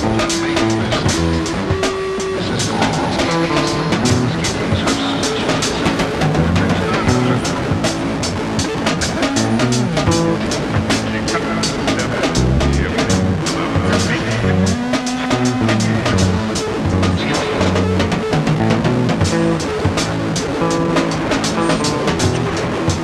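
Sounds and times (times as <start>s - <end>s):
fast drum beat: 0.0s - 23.0s.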